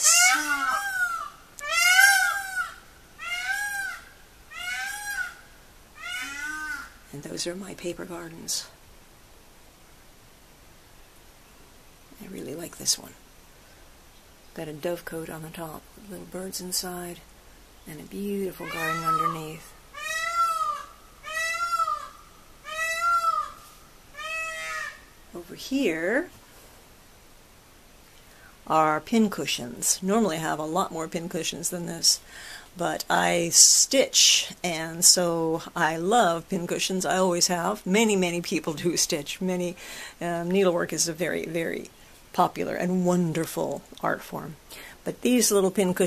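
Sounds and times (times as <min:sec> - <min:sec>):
animal calling: 0:00.0 - 0:07.1, 0:18.2 - 0:25.3.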